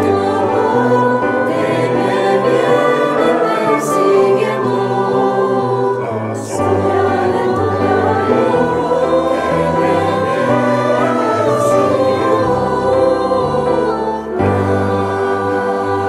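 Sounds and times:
mixed choir singing: 0.0 - 16.0.

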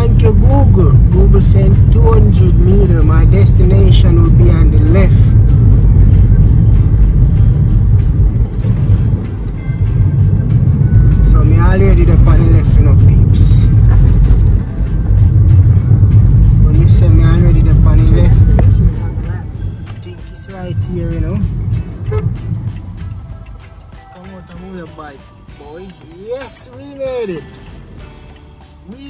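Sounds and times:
car road rumble: 0.0 - 29.0
music with singing: 17.8 - 29.0.

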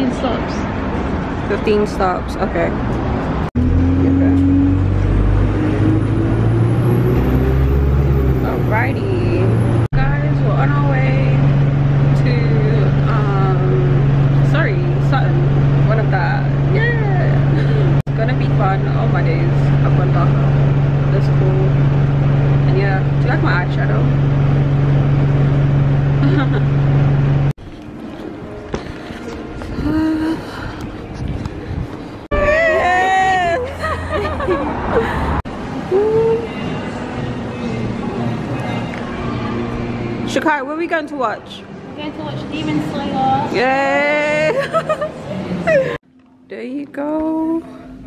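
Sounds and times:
bus engine humming: 0.0 - 48.0
bus pulling away with whine: 2.2 - 40.5
voices: 8.4 - 11.5, 12.1 - 21.9, 22.6 - 24.2.

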